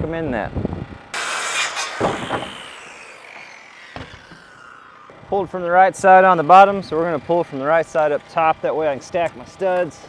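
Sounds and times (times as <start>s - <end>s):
saw blade spinning down whine: 0.9s - 10.0s
circular saw cutting wood: 1.1s - 10.0s.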